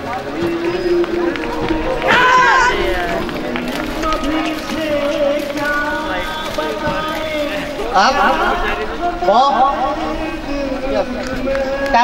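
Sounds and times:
people's voices: 0.0 - 12.0
loud shout: 1.6 - 4.6.

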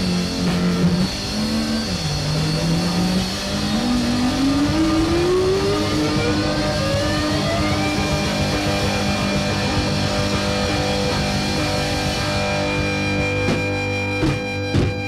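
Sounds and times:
held synthesizer notes: 0.0 - 15.0
synthesizer tone gliding upward: 0.8 - 14.0.

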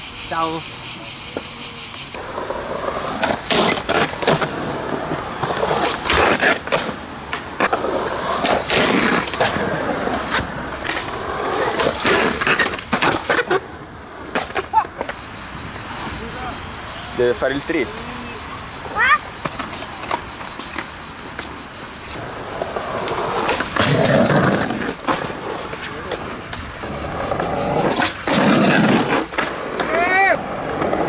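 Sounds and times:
skateboard wheels rolling: 0.8 - 31.0
skateboard clacks: 2.2 - 15.2, 18.9 - 31.0.

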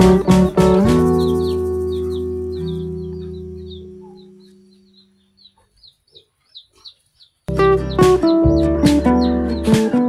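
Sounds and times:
small animals calling: 0.2 - 10.0.

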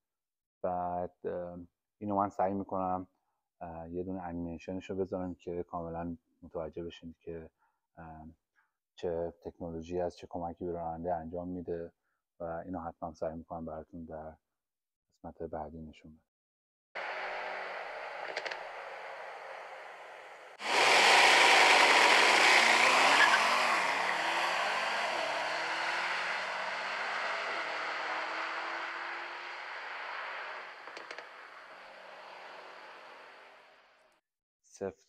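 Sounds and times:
loud rush: 17.0 - 33.6
rising tones: 17.0 - 33.6.

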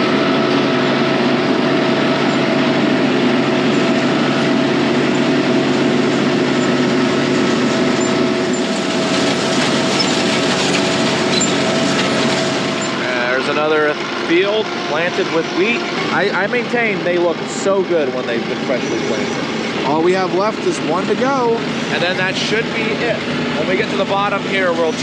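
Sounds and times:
tractor engine running: 0.0 - 25.0
man talking: 13.0 - 25.0.

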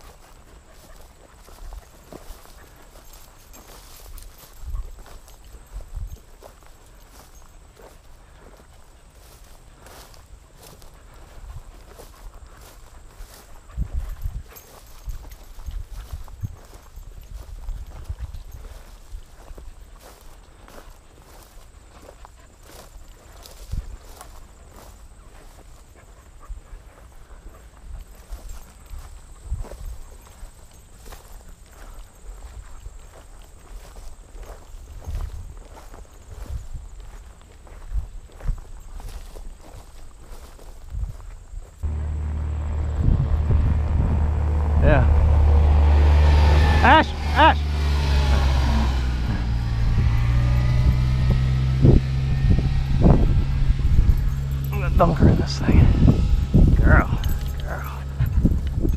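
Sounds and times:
footsteps through tall grass: 0.0 - 43.4, 48.3 - 58.9
loud low rumble: 41.8 - 58.9
voices: 41.9 - 49.7, 54.2 - 58.9.

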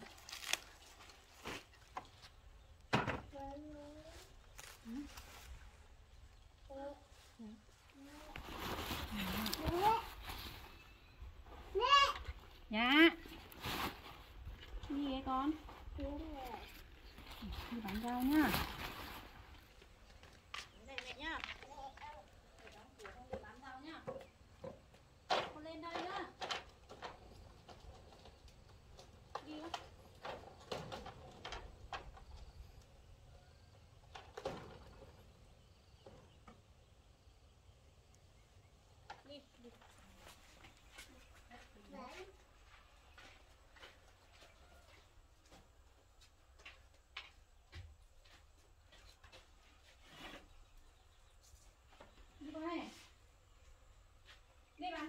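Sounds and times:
small child talking: 3.3 - 4.3, 6.7 - 7.2, 9.6 - 10.2, 11.7 - 12.3, 16.0 - 16.7, 20.8 - 22.8, 41.7 - 42.4
woman talking: 12.7 - 13.2, 14.9 - 15.6, 17.4 - 18.6, 22.6 - 24.2, 52.4 - 53.0, 54.8 - 55.0.

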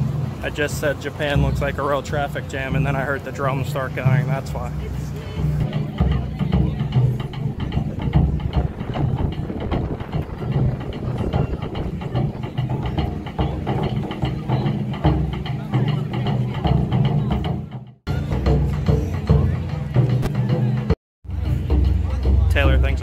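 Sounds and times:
taiko drums beating: 0.0 - 23.0.

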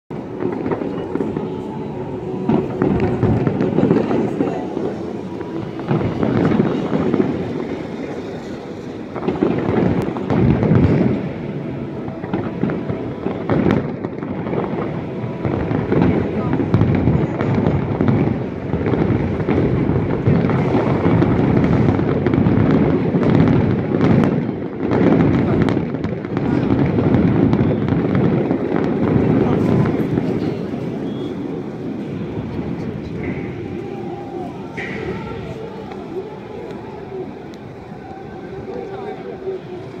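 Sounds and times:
fireworks booming: 0.1 - 40.0
fireworks crackling: 0.1 - 40.0.

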